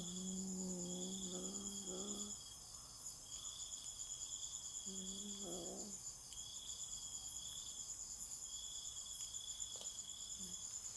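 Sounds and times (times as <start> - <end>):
insects trilling: 0.0 - 10.9.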